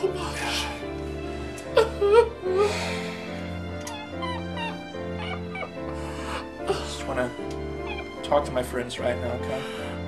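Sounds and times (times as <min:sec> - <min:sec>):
slow background music: 0:00.0 - 0:10.0
man whimpering and sobbing: 0:03.9 - 0:07.2.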